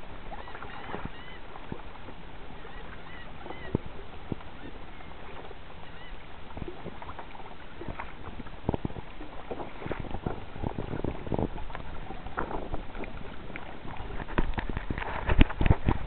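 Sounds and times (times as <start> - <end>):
water slapping against kayak hull: 0.2 - 16.0.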